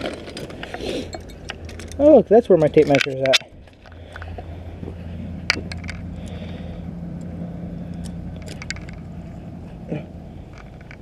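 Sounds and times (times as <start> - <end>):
low hum with faint tone: 0.0 - 11.0
sharp handling clicks: 2.6 - 4.4, 7.2 - 9.1.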